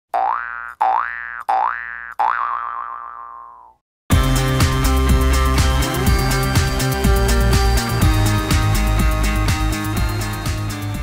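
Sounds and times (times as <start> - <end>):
cartoon boing sound effect: 0.1 - 3.8.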